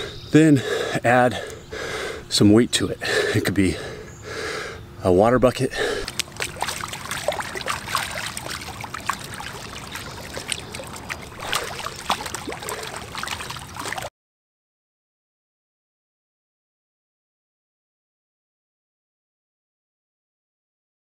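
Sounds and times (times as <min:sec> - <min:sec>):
pool water splashing: 0:05.7 - 0:14.1.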